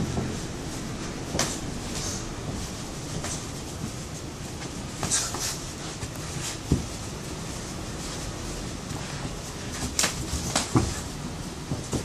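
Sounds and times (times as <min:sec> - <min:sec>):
feet moving on mat: 0:00.0 - 0:12.0
steady background noise: 0:00.0 - 0:12.0
gloved strikes and slaps: 0:01.3 - 0:01.6, 0:09.8 - 0:11.0.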